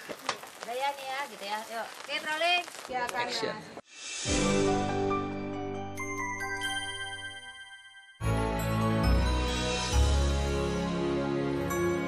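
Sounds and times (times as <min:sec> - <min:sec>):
rice sizzling in a wok: 0:00.0 - 0:04.3.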